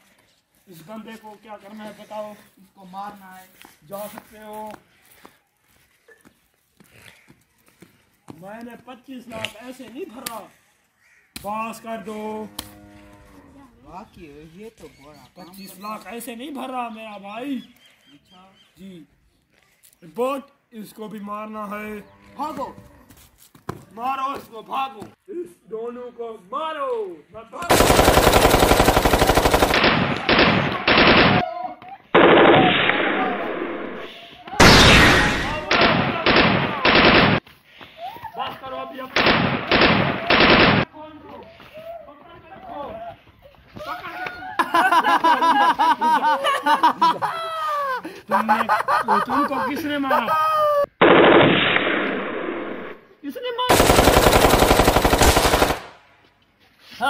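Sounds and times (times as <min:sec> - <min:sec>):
machine-gun fire: 0:27.7 - 0:31.4, 0:32.2 - 0:37.4, 0:39.2 - 0:40.8, 0:51.0 - 0:53.0, 0:53.7 - 0:56.0.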